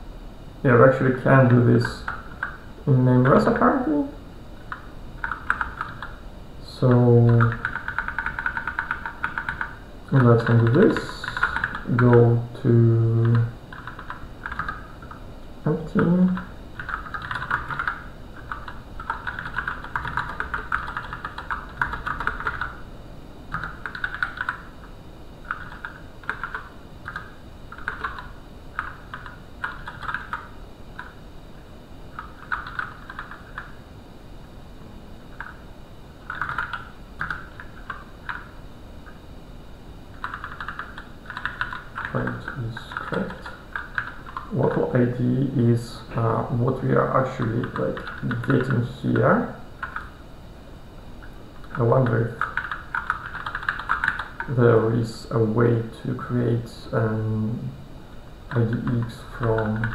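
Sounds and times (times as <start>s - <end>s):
typing on computer keyboard: 1.5s - 2.6s, 4.7s - 6.2s, 6.9s - 12.2s, 13.2s - 15.2s, 16.3s - 22.8s, 23.5s - 24.7s, 25.4s - 31.2s, 32.1s - 33.8s, 35.4s - 35.6s, 36.2s - 38.6s, 40.2s - 44.9s, 47.4s - 49.2s, 49.8s - 50.2s, 51.6s - 54.5s, 58.5s - 59.9s.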